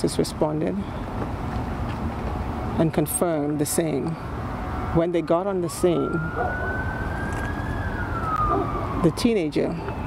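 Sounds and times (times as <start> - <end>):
distant siren wailing: 4.5 - 10.0.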